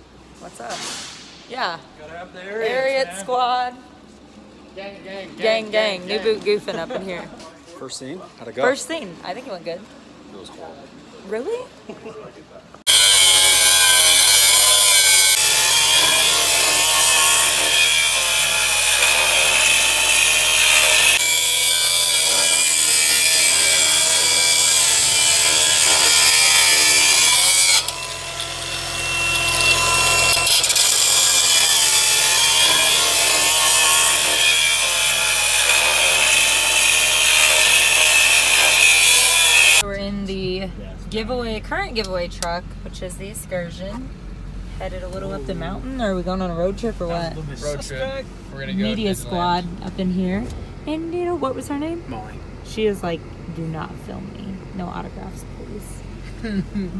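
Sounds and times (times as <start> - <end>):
angle grinder cutting steel: 12.9 - 39.8.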